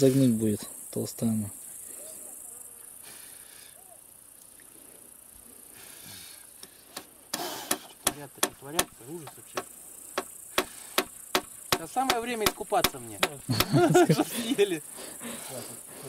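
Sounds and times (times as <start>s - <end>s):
high insect hum: 0.0s - 16.0s
hammer striking nails into wood: 7.0s - 13.8s.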